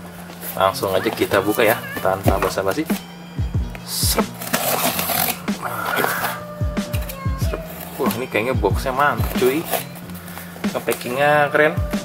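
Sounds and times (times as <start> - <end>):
background music with low beat: 1.1 - 12.0
knife cutting packing tape: 4.2 - 6.4, 9.4 - 11.2.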